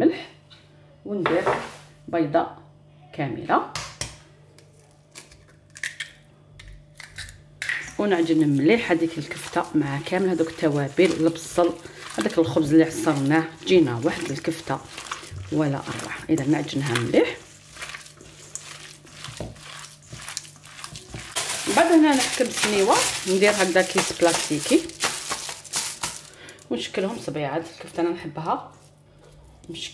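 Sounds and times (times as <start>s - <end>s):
egg cracking into metal bowl: 5.1s - 7.8s
hands squelching meat mixture: 7.9s - 26.7s.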